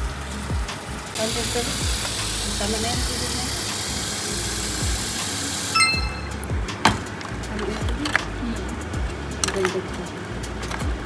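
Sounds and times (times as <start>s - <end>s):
tap water running into pot: 1.2s - 5.8s.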